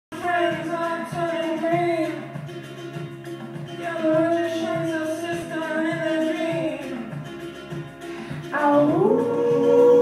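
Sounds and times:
person singing: 0.1s - 2.8s, 3.7s - 10.0s.

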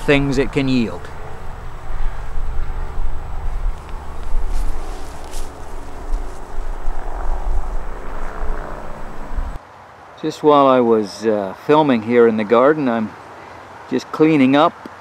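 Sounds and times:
highway traffic rumble: 0.0s - 15.0s
rustles in grass: 1.1s - 9.6s.

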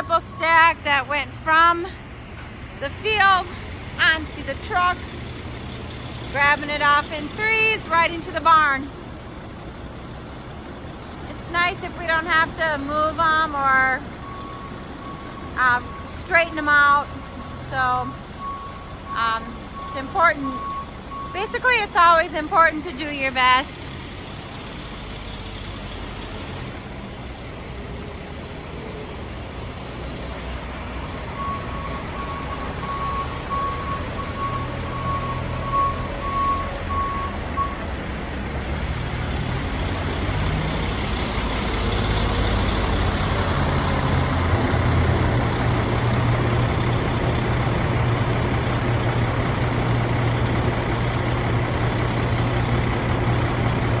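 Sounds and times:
backup alarm beeping: 0.0s - 0.8s, 14.2s - 22.0s, 31.3s - 37.9s
diesel engine running: 0.0s - 54.0s.

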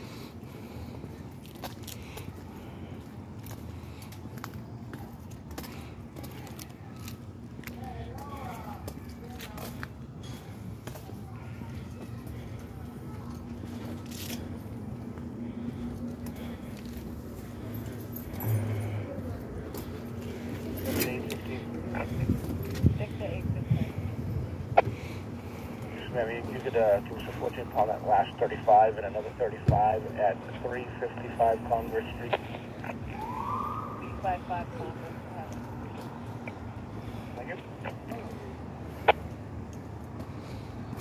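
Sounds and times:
steady low hum: 0.0s - 41.0s
faint background voices: 4.9s - 39.3s.

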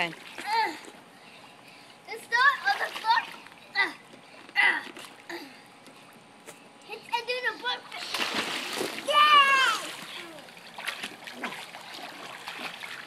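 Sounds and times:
child's voice: 2.1s - 4.0s, 6.9s - 8.0s, 9.1s - 10.5s
children splashing water: 2.3s - 5.5s, 7.7s - 13.0s
child squealing: 9.1s - 9.9s.

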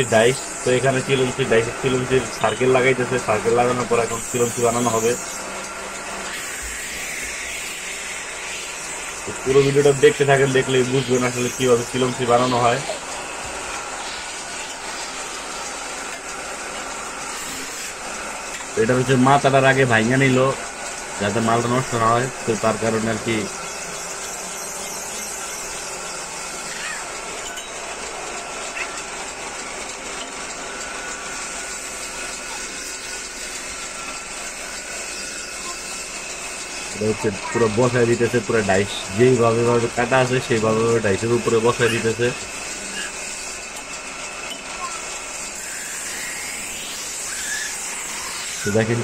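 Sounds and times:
metal rubbing on metal hiss: 0.0s - 16.0s, 16.6s - 29.0s, 29.6s - 49.0s
metal-spinning lathe running: 0.0s - 49.0s.

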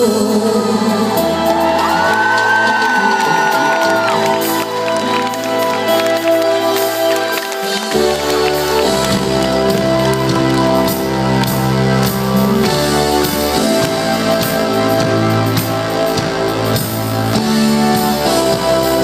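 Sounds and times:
keyboard chords: 0.0s - 19.0s
live pop band playing: 0.0s - 19.0s
crowd cheering: 0.7s - 15.2s.

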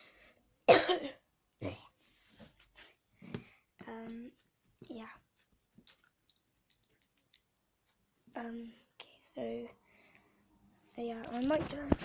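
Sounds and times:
person coughing: 0.7s - 1.8s.

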